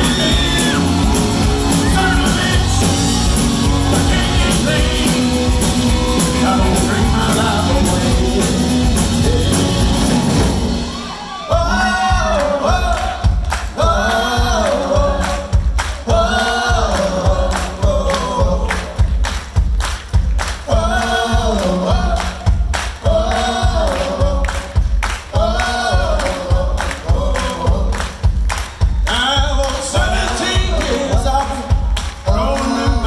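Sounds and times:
man singing rock song: 0.0s - 10.5s, 29.1s - 33.0s
voices singing along: 0.0s - 19.0s
hand claps beat: 12.3s - 33.0s.

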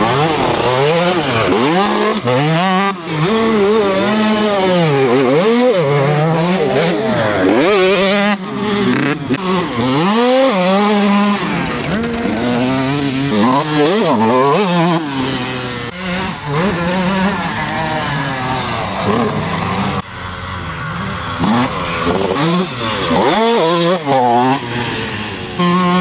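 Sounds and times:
motorcycle engine revving: 0.0s - 26.0s.

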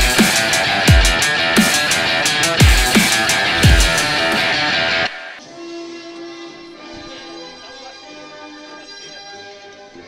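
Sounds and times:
loud intro music: 0.0s - 5.4s.

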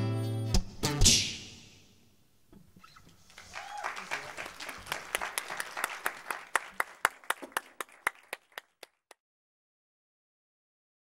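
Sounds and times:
audience applause: 3.2s - 9.2s.

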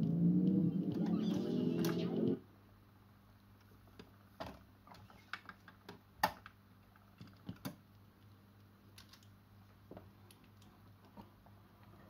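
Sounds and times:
faint steady hum: 0.0s - 12.0s
turntable mechanism clicks and clacks: 0.5s - 2.4s.

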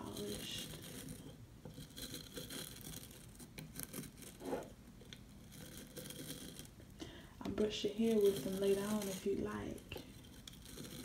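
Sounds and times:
fingertips scratching hairbrush bristles: 7.6s - 11.0s.

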